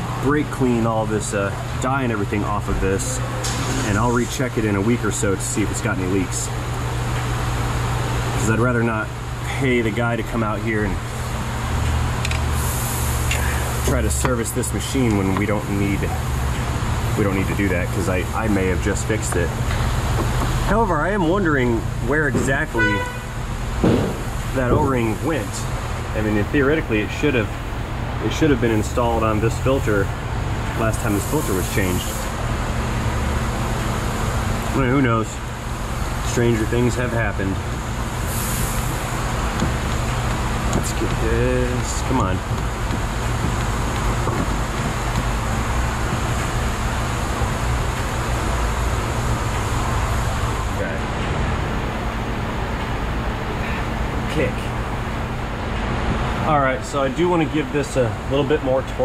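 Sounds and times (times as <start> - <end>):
low machine hum: 0.0 - 59.0
high hiss: 12.6 - 13.8, 38.2 - 39.4.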